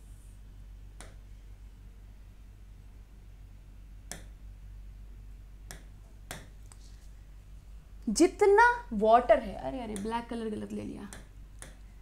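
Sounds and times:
taps on touchscreen: 9.9 - 10.2.

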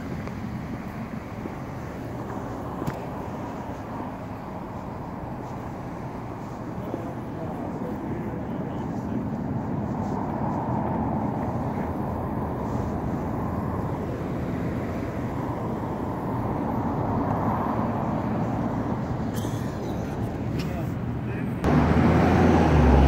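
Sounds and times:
traffic rumble on wet road: 0.0 - 23.0.

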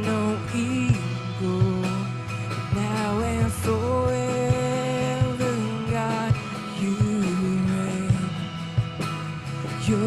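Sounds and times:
worship song with band: 0.0 - 10.0.

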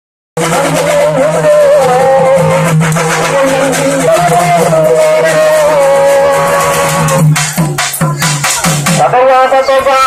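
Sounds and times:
wavering moaning drum tone: 0.4 - 8.5
drum ensemble beating fast: 0.4 - 10.0.

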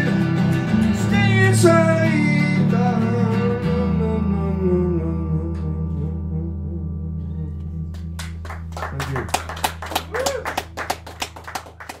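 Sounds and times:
audience clapping: 8.0 - 12.0.

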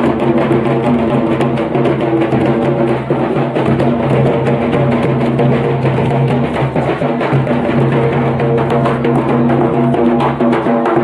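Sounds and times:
barrel drum beating: 0.0 - 11.0.

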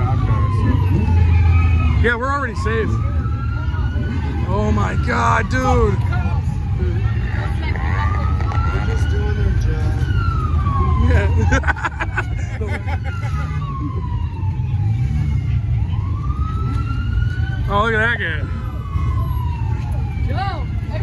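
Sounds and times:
car engines idling: 0.0 - 21.0
emergency vehicle siren wailing: 0.0 - 21.0.

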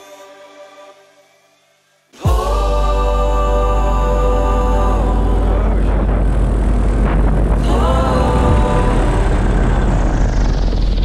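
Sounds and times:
wind rushing over microphone: 5.6 - 11.0
paramotor engine and propeller: 8.3 - 11.0.

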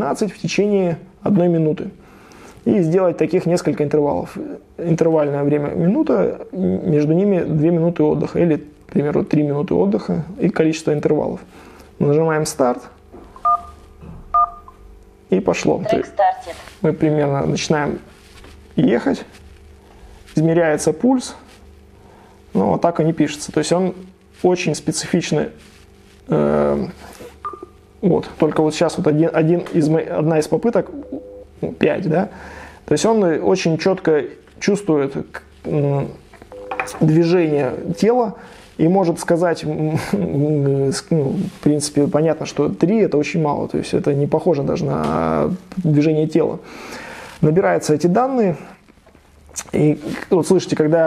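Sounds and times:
short electronic beeps: 13.4 - 14.8, 27.4 - 27.8.

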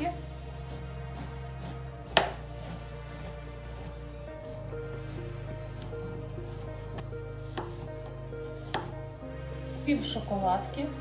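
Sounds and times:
background music: 0.0 - 11.0
knife chopping on cutting board: 1.2 - 3.9, 7.5 - 7.9, 8.6 - 8.9.

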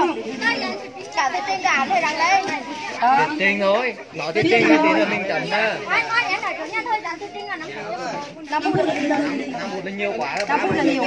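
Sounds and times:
women talking over one another: 4.3 - 7.2, 8.1 - 9.8, 10.4 - 11.0.

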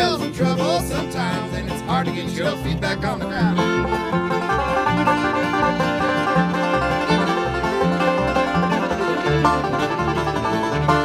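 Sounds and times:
acoustic guitar: 0.0 - 11.0
banjo picking rapid notes: 0.0 - 11.0
fiddle: 0.0 - 11.0
upright bass: 0.0 - 11.0.

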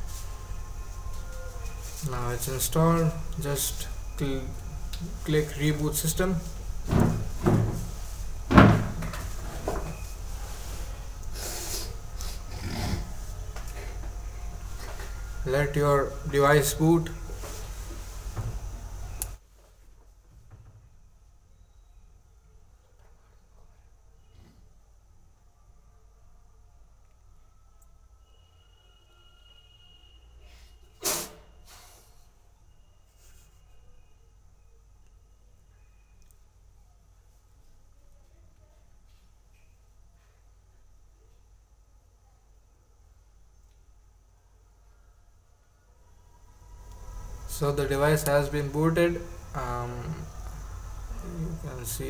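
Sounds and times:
faint thin whine: 0.0 - 52.0.

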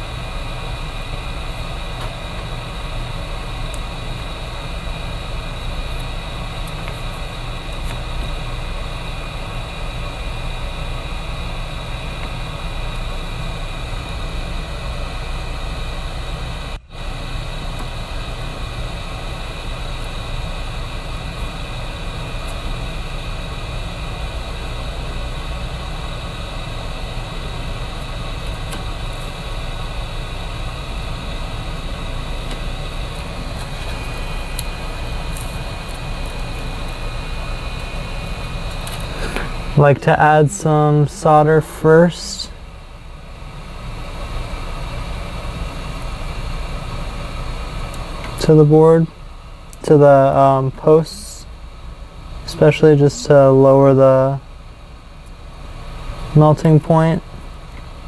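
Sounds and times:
fan-like whir and hiss: 0.0 - 58.0.

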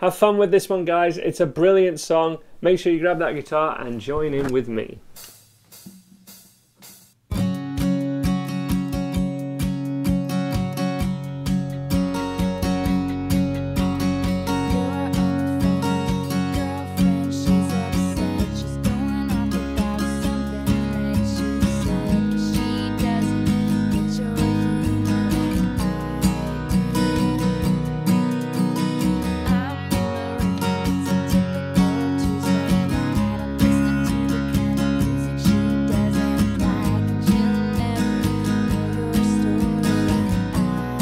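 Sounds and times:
acoustic guitar strumming: 5.2 - 41.0.

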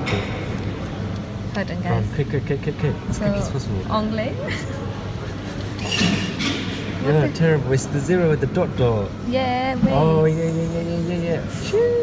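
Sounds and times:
hum and murmur of indoor hall: 0.0 - 12.0.

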